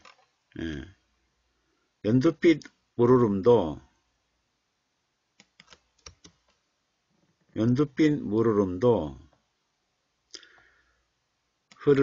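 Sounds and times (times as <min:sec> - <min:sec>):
person speaking: 0:00.0 - 0:01.1, 0:02.0 - 0:04.1, 0:07.4 - 0:09.5, 0:11.6 - 0:12.0
computer mouse click: 0:05.4 - 0:06.6.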